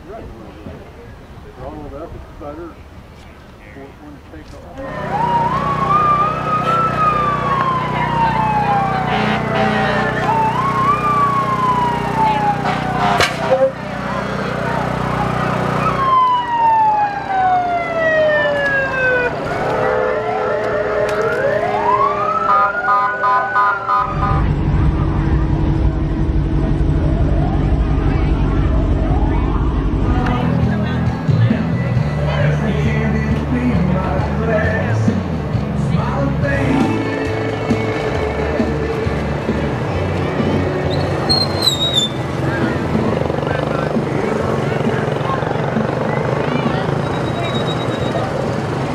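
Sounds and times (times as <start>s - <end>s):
emergency sirens wailing: 4.7s - 48.9s
steady low rumble: 24.0s - 31.8s.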